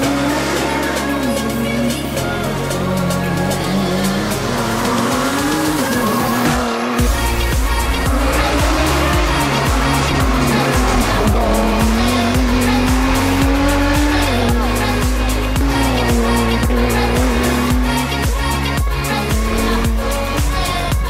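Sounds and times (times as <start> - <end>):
background music with steady beat: 0.0 - 21.0
race car engine accelerating: 0.0 - 21.0.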